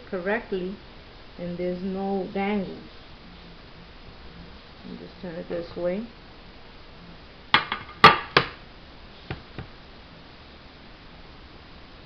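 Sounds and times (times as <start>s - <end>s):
ceramic tile knocking on tabletop: 7.6s - 8.6s.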